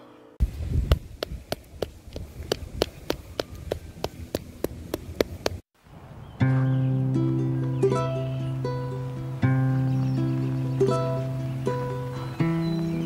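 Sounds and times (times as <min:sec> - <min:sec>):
sharp ticking: 0:00.9 - 0:05.6.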